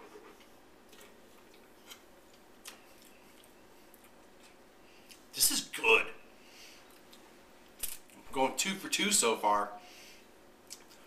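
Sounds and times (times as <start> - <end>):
man speaking: 5.4 - 6.2, 8.3 - 9.8.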